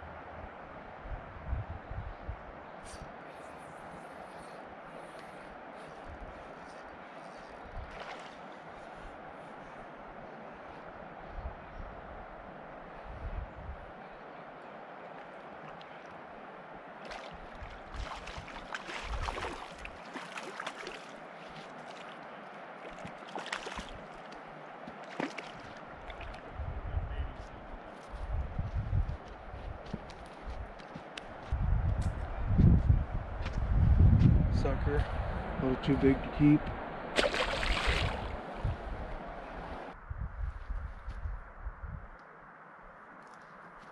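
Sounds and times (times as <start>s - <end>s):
fish splashing and thrashing: 17.1s - 22.2s, 22.8s - 24.1s, 25.1s - 26.4s, 37.2s - 38.4s.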